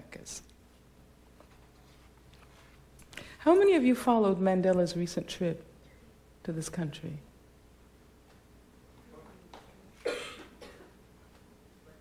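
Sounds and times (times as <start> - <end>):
person coughing: 10.0 - 11.0.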